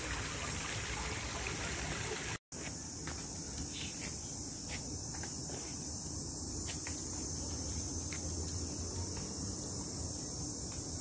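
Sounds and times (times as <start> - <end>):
insects buzzing: 2.1 - 11.0.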